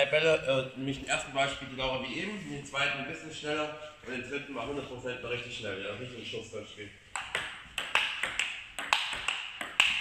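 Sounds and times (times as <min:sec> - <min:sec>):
table tennis ball clicking: 0:07.2 - 0:10.0.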